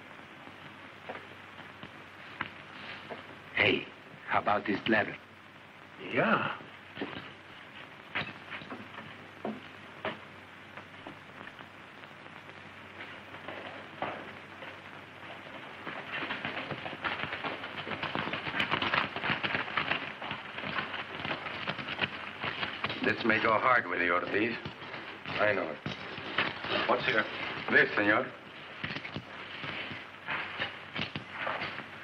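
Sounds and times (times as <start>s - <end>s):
horse hooves on hard ground: 7.0s - 32.0s.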